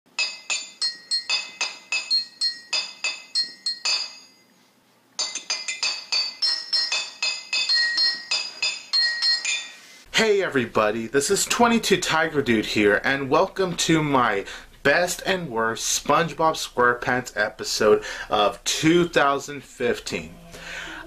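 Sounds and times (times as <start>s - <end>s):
bell-like jingle notes: 0.2s - 4.4s, 5.2s - 10.0s.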